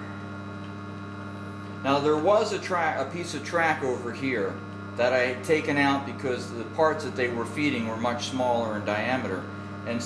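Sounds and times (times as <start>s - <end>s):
vibratory feeder humming: 0.0s - 10.0s
person speaking: 1.8s - 10.0s.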